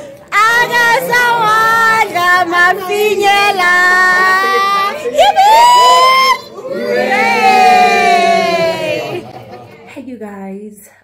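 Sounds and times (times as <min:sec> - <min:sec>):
people singing a chant: 0:00.3 - 0:05.0.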